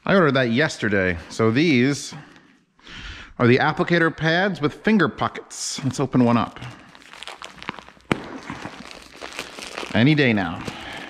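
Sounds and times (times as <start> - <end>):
plastic shrink-wrap crinkling: 6.2 - 11.0.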